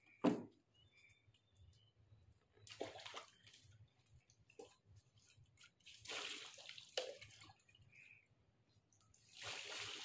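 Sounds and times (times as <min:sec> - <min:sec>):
water splashing in paddling pool: 0:02.6 - 0:03.7, 0:05.6 - 0:07.8.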